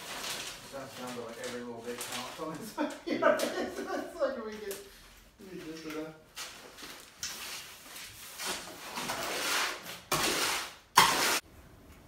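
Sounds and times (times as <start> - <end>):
shovel scraping wet concrete: 8.4 - 11.4.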